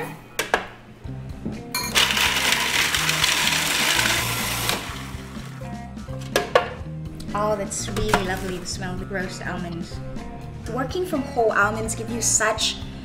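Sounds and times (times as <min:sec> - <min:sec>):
food processor grinding: 0:01.9 - 0:05.6.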